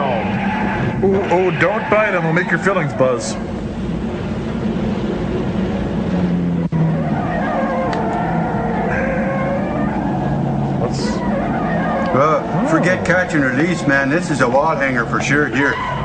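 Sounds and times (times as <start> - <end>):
droning engine-like hum: 0.0 - 16.0
wavering warbling tones: 0.0 - 16.0.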